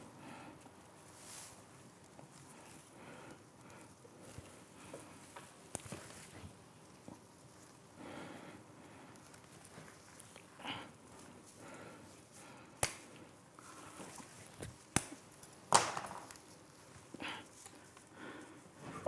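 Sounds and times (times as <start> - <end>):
rustling pine needles and branches: 0.9 - 3.0, 8.6 - 12.6.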